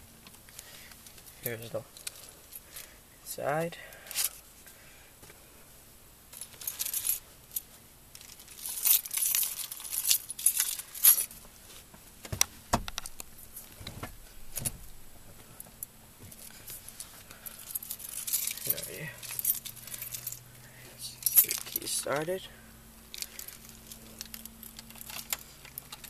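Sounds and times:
keys jingling: 0:06.3 - 0:11.4, 0:16.4 - 0:22.2, 0:23.1 - 0:26.0
dull thumps: 0:12.2 - 0:16.4.

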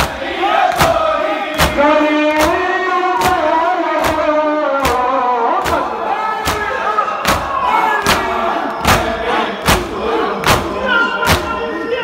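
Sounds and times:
heavy chest slaps in unison: 0:00.0 - 0:01.0, 0:01.6 - 0:01.8, 0:06.4 - 0:06.7, 0:08.1 - 0:08.3
men chanting: 0:00.0 - 0:12.0.

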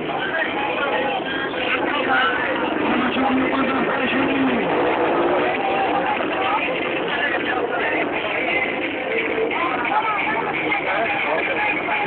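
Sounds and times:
crowd voices: 0:00.0 - 0:12.0
motorcycle engine: 0:02.5 - 0:07.0.

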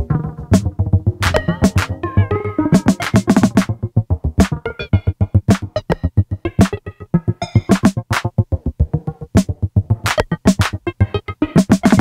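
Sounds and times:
sequenced synthesizer notes: 0:00.0 - 0:12.0.

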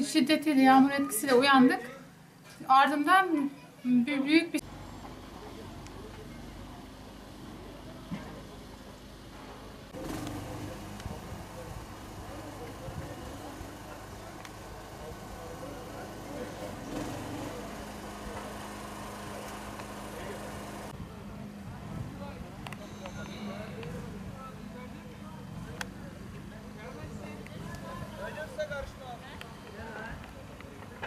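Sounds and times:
faint indistinct voices: 0:00.0 - 0:31.0.

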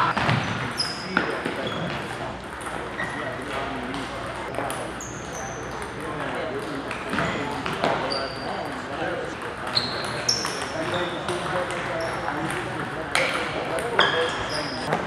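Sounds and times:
murmur of voices: 0:00.0 - 0:00.4.

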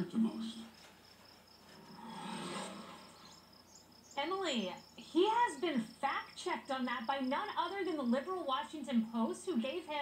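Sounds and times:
high-pitched insect chirping: 0:00.1 - 0:10.0.

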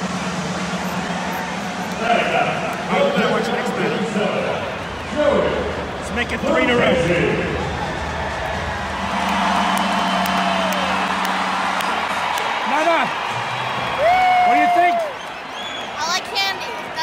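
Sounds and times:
fans whooping and calling: 0:00.0 - 0:17.0
stadium crowd cheering and applauding: 0:00.0 - 0:17.0.

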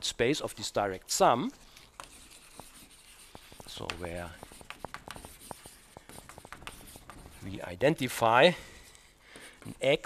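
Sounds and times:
chalk scratching on blackboard: 0:01.5 - 0:08.3.

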